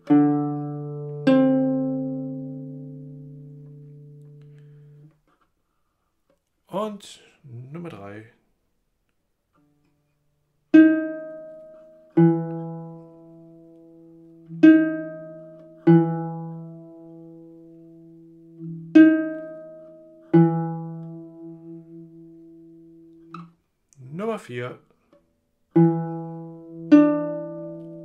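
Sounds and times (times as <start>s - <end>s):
plucked string instrument notes: 0.0s - 5.3s, 10.7s - 28.0s.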